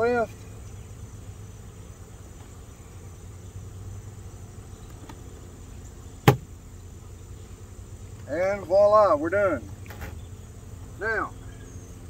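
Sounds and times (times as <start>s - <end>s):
insects humming: 0.0s - 12.0s.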